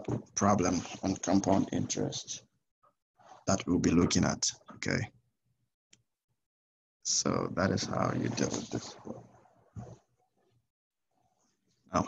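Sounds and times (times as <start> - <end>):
person speaking: 7.1 - 9.1.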